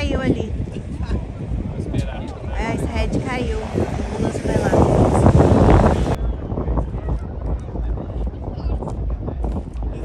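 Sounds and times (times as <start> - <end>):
onlookers talking and calling out: 0.0 - 10.0
wind buffeting microphone: 0.0 - 10.0.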